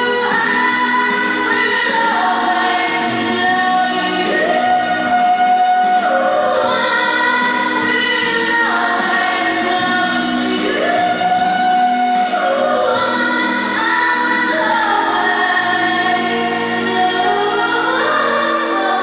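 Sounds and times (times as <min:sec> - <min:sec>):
woman singing into a microphone: 0:00.0 - 0:19.0.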